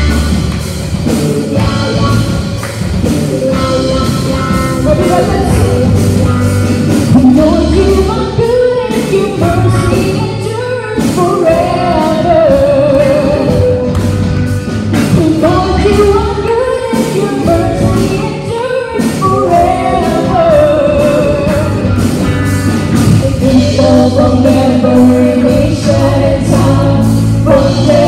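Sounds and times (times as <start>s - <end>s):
steady beat: 0.0s - 8.6s
electric guitar: 0.0s - 28.0s
women singing: 4.9s - 6.1s, 7.1s - 13.9s, 15.0s - 21.8s, 23.1s - 28.0s.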